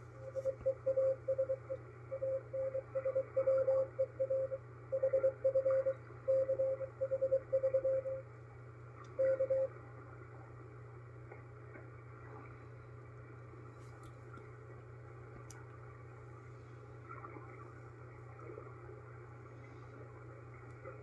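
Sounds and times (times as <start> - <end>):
receiver hiss with low hum: 0.0 - 21.0
morse code tone: 0.2 - 8.2, 9.2 - 9.7.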